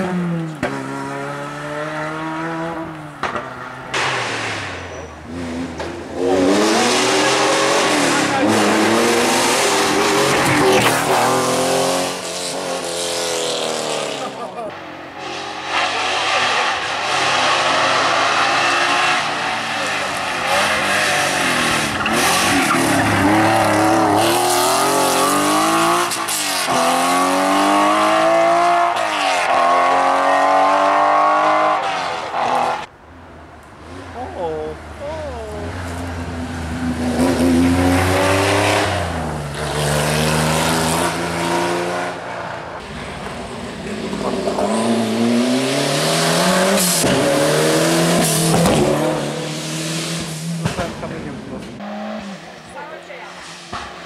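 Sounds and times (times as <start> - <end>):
rally car accelerating hard: 0.0 - 32.9, 35.5 - 54.0.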